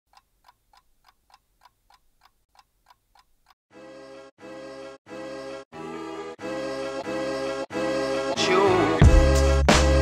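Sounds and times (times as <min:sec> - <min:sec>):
clock ticking: 0:00.1 - 0:03.6
loud music: 0:05.3 - 0:10.0.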